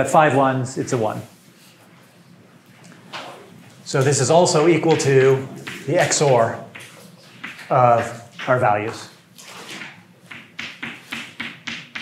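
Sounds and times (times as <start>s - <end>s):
chalk tapping on blackboard: 5.6s - 9.0s, 9.8s - 12.0s.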